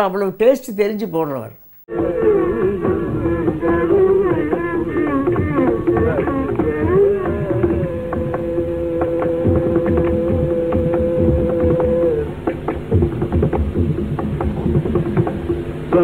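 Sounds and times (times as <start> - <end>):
mridangam drum strokes: 2.8 - 16.0.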